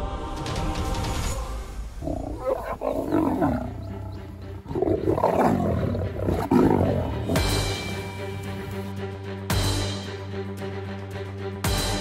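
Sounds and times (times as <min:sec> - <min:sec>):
lioness calling harshly: 0:02.0 - 0:08.7.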